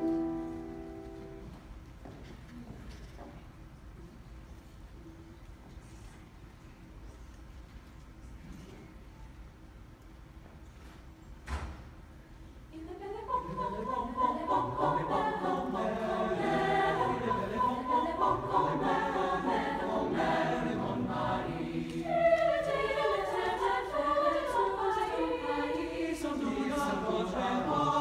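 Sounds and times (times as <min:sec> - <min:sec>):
mixed choir singing: 0:12.8 - 0:28.0.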